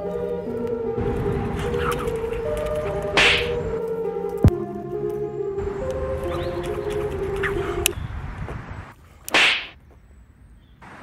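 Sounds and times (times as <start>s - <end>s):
jump rope swishing through air: 9.3s - 9.8s.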